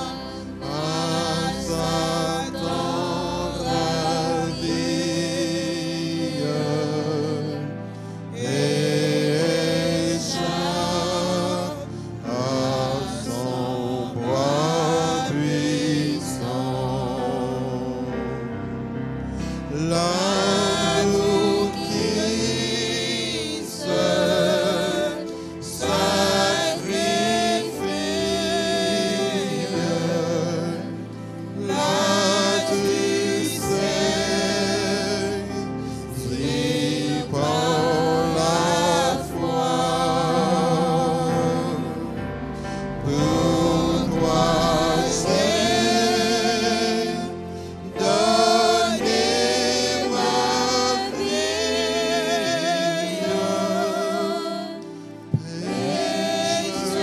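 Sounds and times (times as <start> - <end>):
slow hymn singing: 0.0 - 57.0.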